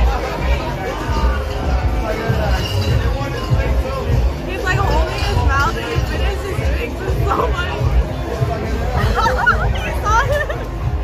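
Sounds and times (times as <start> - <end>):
background music: 0.0 - 11.0
crowd babble: 0.0 - 11.0.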